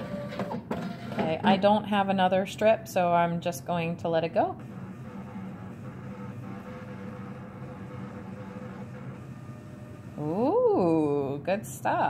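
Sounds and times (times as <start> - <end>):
printer feeding with steady hum: 0.0 - 11.2.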